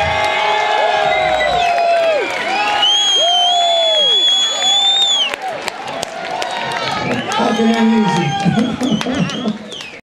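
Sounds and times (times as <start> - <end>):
crowd cheering and whooping: 0.0 - 10.0
loud piercing whistle: 1.0 - 5.4.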